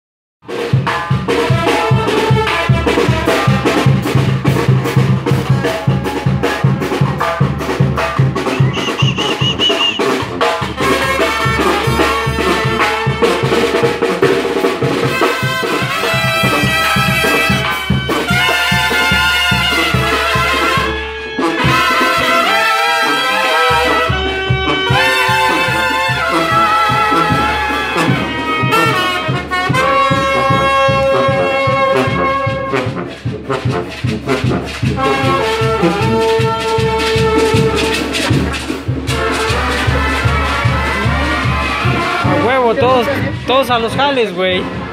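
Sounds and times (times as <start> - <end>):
brass band playing: 0.4 - 44.9
steady drum beat: 0.4 - 44.9
tuba: 0.5 - 44.0, 44.6 - 44.9
trumpets: 0.5 - 44.9
sousaphone bass line: 5.4 - 13.5.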